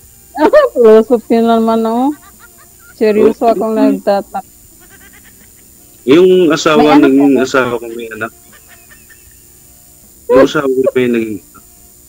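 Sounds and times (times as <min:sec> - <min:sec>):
person's voice: 0:00.4 - 0:02.2, 0:03.0 - 0:04.4, 0:06.1 - 0:08.3, 0:10.3 - 0:11.4.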